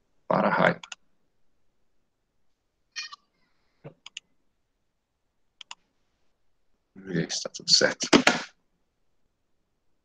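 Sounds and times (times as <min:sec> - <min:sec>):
computer mouse clicks: 0:00.8 - 0:01.0, 0:03.8 - 0:04.3, 0:05.6 - 0:05.8.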